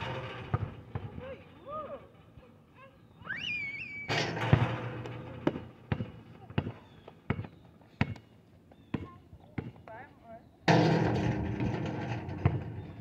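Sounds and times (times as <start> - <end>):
basketball bouncing on asphalt: 5.4 - 10.0.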